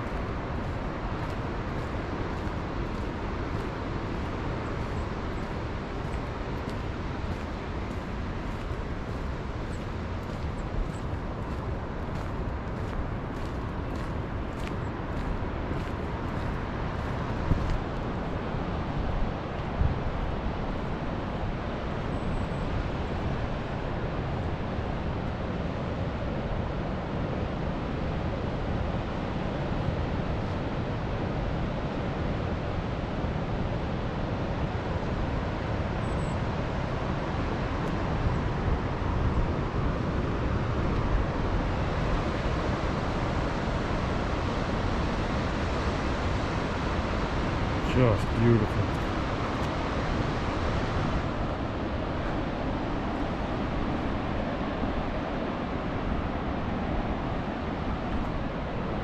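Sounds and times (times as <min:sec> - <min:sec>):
distant ocean surf: 0:00.0 - 0:59.0
wind: 0:00.0 - 0:59.0
wind rumble on microphone: 0:00.0 - 0:59.0.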